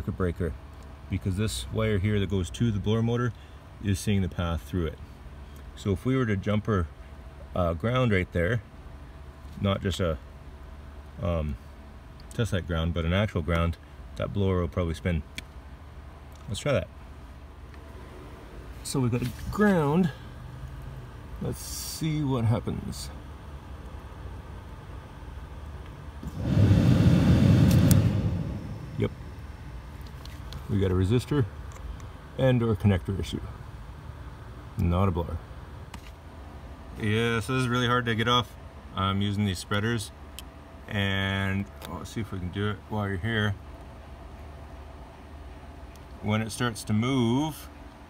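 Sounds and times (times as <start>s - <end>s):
low hum and hiss: 0.0s - 48.0s
blower motor rush of air: 26.2s - 30.2s.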